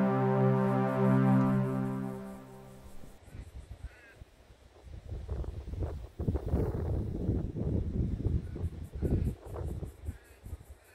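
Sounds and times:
wind rumbling on microphone: 2.9s - 10.9s.

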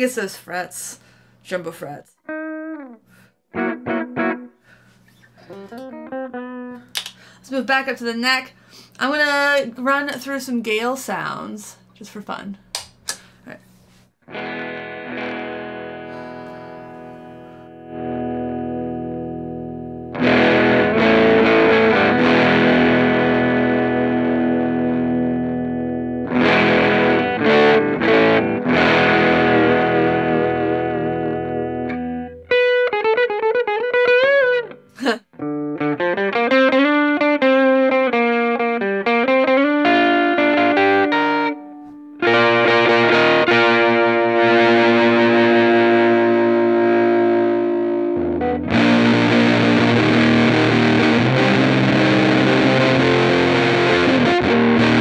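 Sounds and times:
electric guitar with effects: 2.2s - 7.5s, 14.2s - 55.0s.

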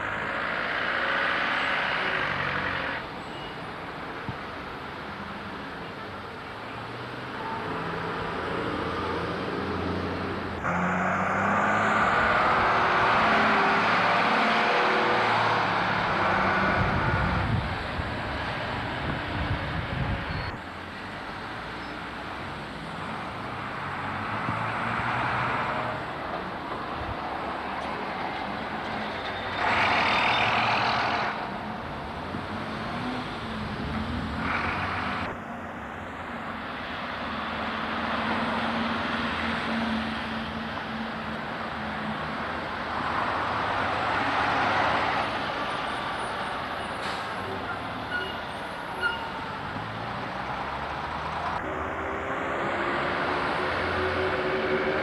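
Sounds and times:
bus diesel engines passing: 0.0s - 55.0s
road traffic: 0.0s - 55.0s.

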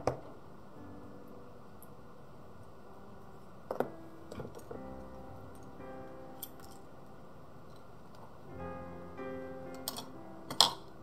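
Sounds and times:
soft background music: 0.0s - 11.0s
pencils clicking and tapping: 9.8s - 10.9s.

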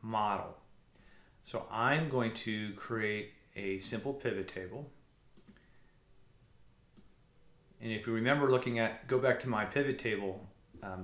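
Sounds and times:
computer mouse click: 5.3s - 5.7s, 6.9s - 7.2s.

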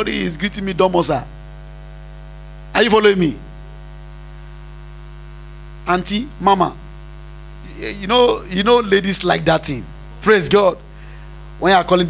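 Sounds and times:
man's voice: 0.0s - 1.3s, 2.8s - 3.4s, 5.9s - 6.8s, 7.7s - 10.8s, 11.6s - 12.0s
electrical mains hum: 0.0s - 12.0s.

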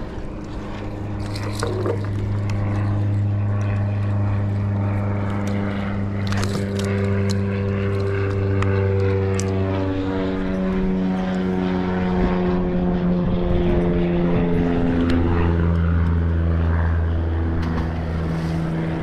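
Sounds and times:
propeller aircraft engine running: 0.0s - 19.0s.

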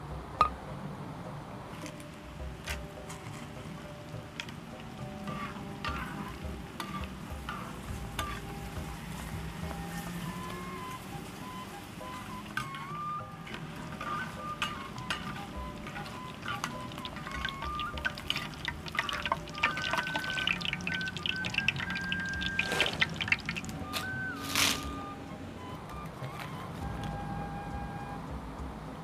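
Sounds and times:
background music: 0.0s - 29.0s
crackers crackling in hot oil: 4.4s - 11.1s, 12.0s - 24.9s
oil dripping into wok: 13.4s - 23.8s.

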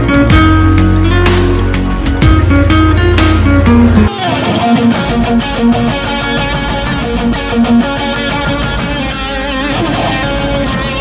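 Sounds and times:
deep sustained bass: 0.0s - 4.1s
fingerstyle acoustic guitar: 0.0s - 11.0s.

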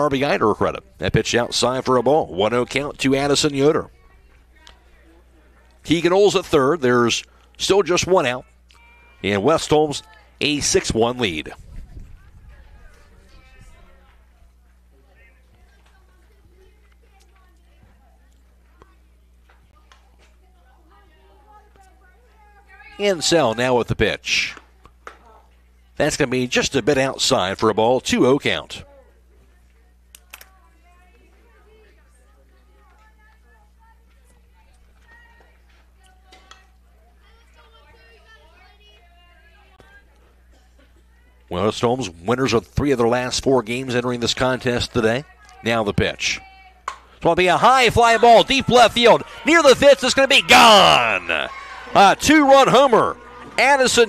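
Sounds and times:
distant voices chattering: 0.0s - 23.3s, 43.7s - 54.0s
faint distant voices: 2.6s - 5.9s.

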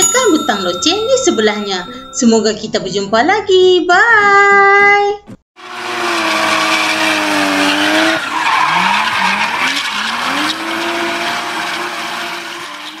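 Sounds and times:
car engine revving hard: 5.6s - 13.0s
tyres screeching: 5.7s - 13.0s.

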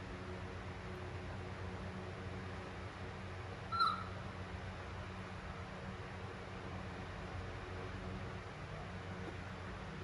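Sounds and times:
background hum and hiss: 0.0s - 10.0s
baby monkey squeak: 3.7s - 4.1s.

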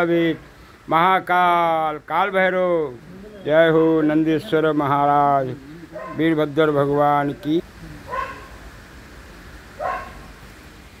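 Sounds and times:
dog barking: 5.9s - 6.3s, 8.1s - 8.6s, 9.8s - 10.3s.

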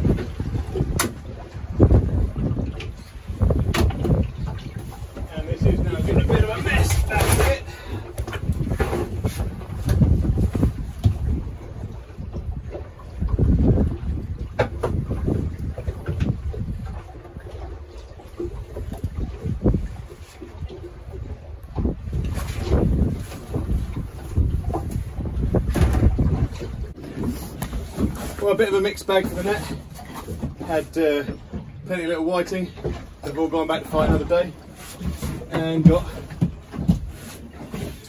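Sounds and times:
wind buffeting microphone: 0.0s - 38.0s
knocks and rustles of net hauling: 6.1s - 11.4s.

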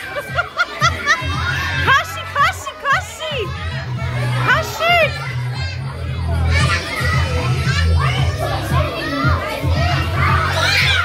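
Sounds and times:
children shouting and squealing: 0.0s - 11.0s.

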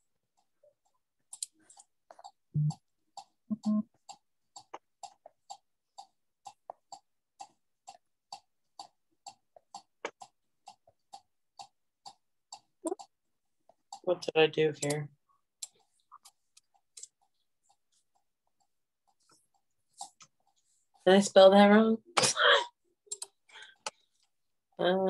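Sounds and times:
regular ticking: 0.0s - 25.0s.

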